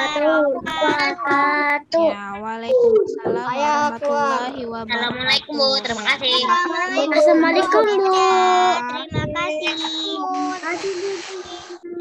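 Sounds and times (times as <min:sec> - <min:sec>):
child chanting: 0:00.0 - 0:12.0.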